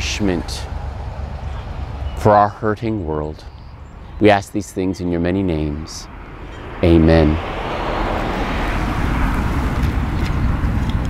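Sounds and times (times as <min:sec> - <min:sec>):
low rumble: 0:00.0 - 0:04.3.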